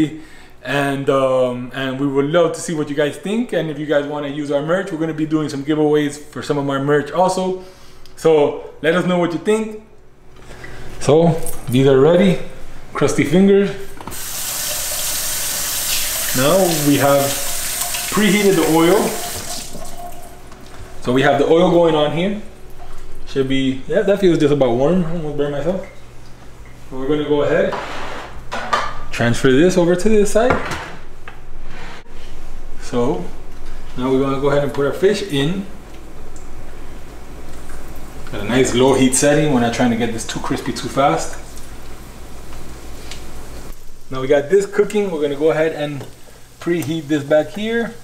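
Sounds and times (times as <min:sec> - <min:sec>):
faucet running into sink: 0:14.1 - 0:20.5
fish sizzling in a frying pan: 0:14.2 - 0:20.1.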